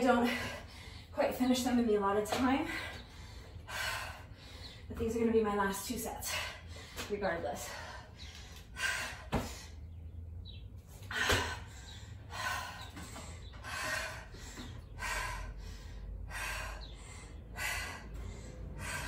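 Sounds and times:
woman breathing hard: 2.7 - 4.9, 7.6 - 10.0, 11.0 - 19.0.

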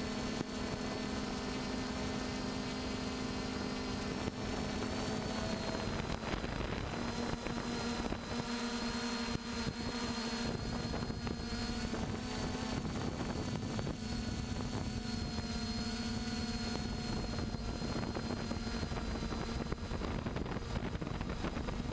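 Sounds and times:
drone motors whirring: 0.0 - 21.9.

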